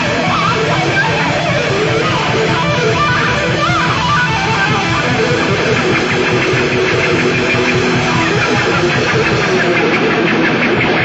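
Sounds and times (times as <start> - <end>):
electric guitar quick run of notes: 0.0 - 11.0.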